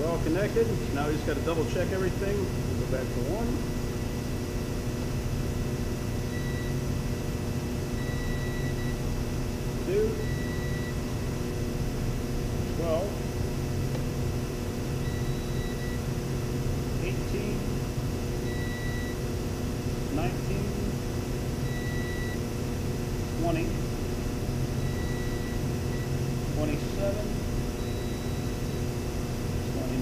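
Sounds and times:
steady low hum: 0.0s - 30.0s
multimeter short high beeps: 8.0s - 9.0s, 9.9s - 11.0s, 15.1s - 16.0s, 18.4s - 19.2s, 21.6s - 22.4s, 24.8s - 26.1s, 27.8s - 28.8s.

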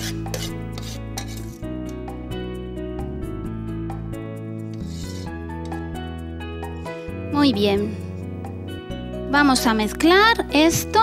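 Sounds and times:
metal spoon scraping a pot: 0.0s - 2.0s, 4.7s - 6.0s
background music: 0.0s - 11.0s.

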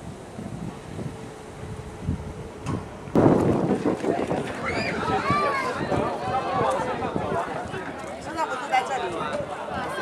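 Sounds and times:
outdoor crowd noise: 0.0s - 10.0s
wind buffeting microphone: 0.0s - 10.0s.

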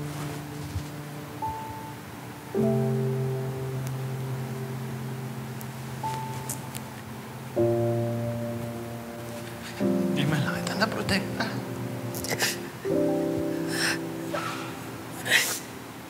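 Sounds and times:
slow soft piano music: 0.0s - 16.0s.

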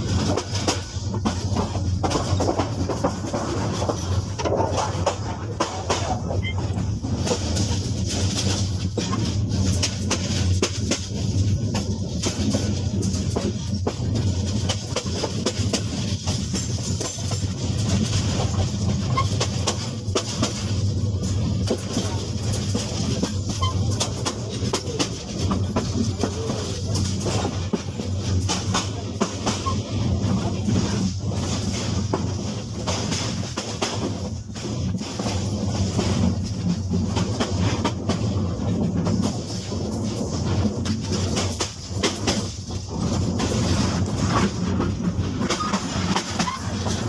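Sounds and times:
rail vehicle rumbling: 0.0s - 47.0s
wheels clattering on track: 0.0s - 47.0s.

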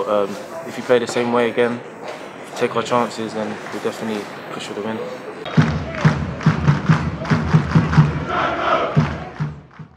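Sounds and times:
crowd chanting: 3.5s - 9.8s
beat of low thumps: 5.5s - 8.3s.

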